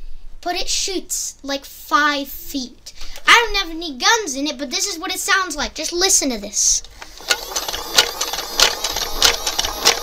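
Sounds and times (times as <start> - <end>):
firing mechanism clacking: 7.0 - 10.0
toy blaster motor whirring: 7.0 - 10.0.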